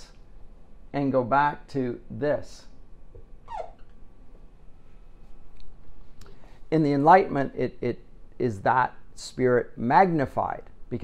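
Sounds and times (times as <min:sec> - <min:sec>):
marker squeaking on whiteboard: 0:03.4 - 0:04.0.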